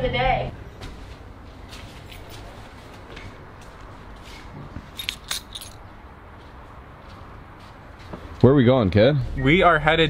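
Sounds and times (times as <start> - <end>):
light clinks: 4.9 - 5.8.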